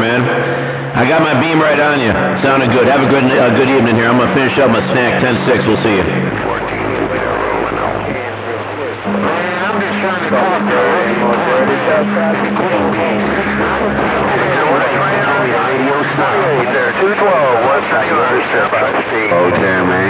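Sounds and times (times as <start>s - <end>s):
speech over radio speaker: 0.0s - 0.4s, 1.0s - 20.0s
steady low hum: 0.0s - 20.0s.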